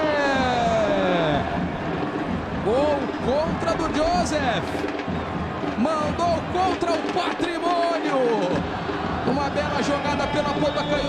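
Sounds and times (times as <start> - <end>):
commentator shouting goal: 0.0 - 1.6.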